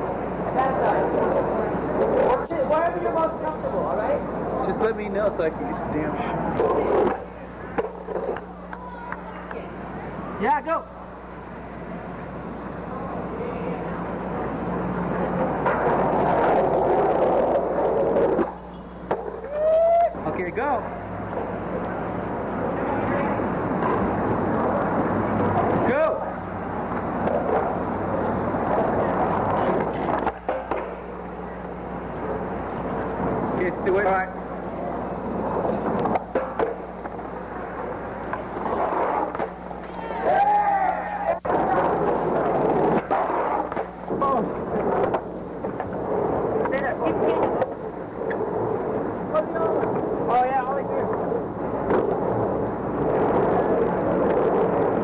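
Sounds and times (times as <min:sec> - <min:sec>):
low electrical hum: 0:00.0 - 0:55.0
skateboard wheels rolling on pavement: 0:00.0 - 0:55.0.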